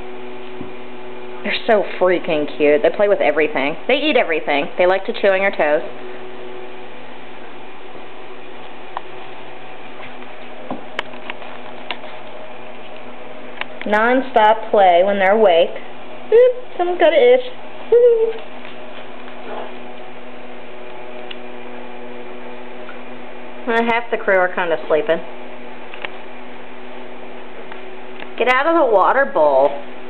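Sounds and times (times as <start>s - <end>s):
electrical hum: 0.0s - 30.0s.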